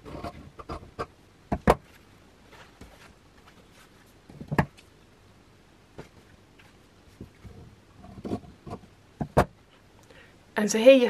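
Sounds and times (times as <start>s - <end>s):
knocks: 8.7s - 9.6s.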